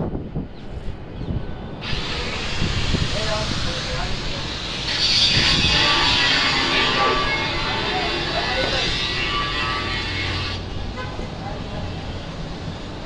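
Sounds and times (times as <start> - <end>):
steady hiss: 1.8 - 10.6.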